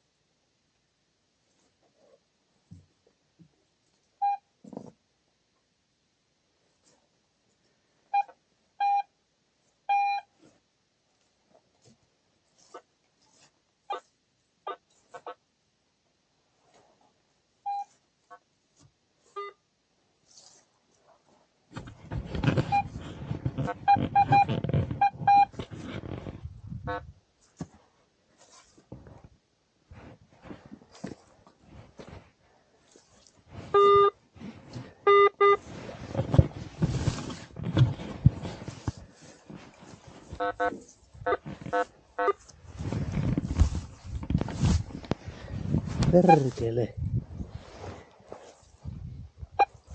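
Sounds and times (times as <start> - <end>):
metal detector beeps: 4.2 - 4.4, 8.1 - 9.1, 9.9 - 10.3, 17.7 - 17.9, 19.4 - 19.6, 22.7 - 22.9, 23.8 - 25.5, 33.7 - 34.2, 35.1 - 35.6, 46.2 - 46.5
coil rustling through grass: 20.2 - 35.0, 35.6 - 49.9.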